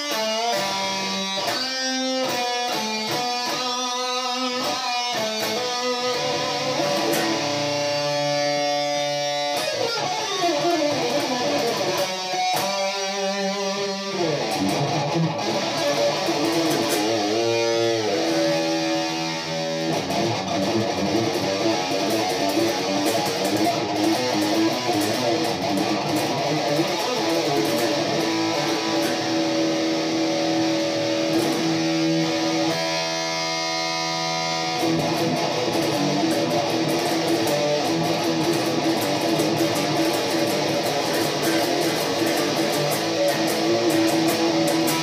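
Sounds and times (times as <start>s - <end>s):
electric guitar lead line: 0.0s - 45.0s.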